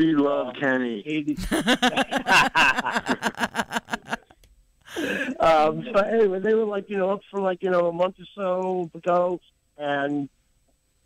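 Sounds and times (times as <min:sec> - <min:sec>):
person laughing: 0:01.4 - 0:04.2, 0:04.9 - 0:05.4.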